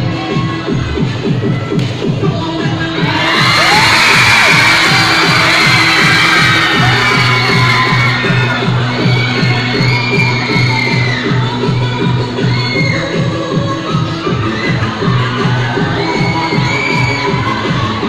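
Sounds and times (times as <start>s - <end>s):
crowd cheering and shouting: 0.0s - 18.0s
dance music with electronic beat: 0.0s - 18.0s.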